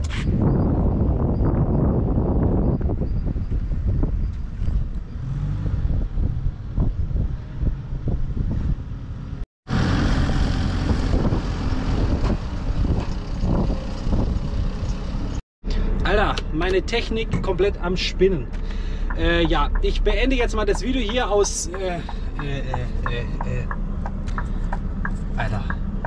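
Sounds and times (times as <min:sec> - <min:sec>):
truck diesel engine running: 0:17.9 - 0:26.0.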